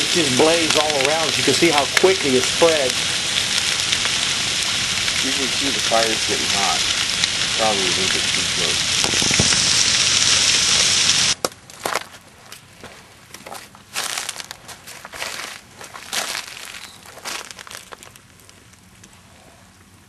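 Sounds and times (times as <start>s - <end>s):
fire hissing and crackling: 0.0s - 12.5s, 13.4s - 20.0s
fire crackles and snaps: 0.0s - 20.0s.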